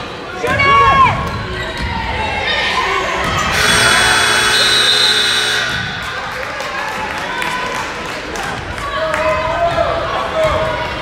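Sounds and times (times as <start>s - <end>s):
crowd noise in large hall: 0.0s - 11.0s
scoreboard horn tone: 3.5s - 6.2s.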